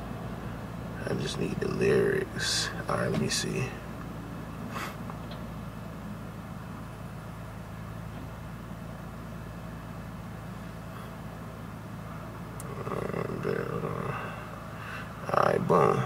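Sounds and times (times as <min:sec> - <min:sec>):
low hum in car cabin: 0:00.0 - 0:16.0.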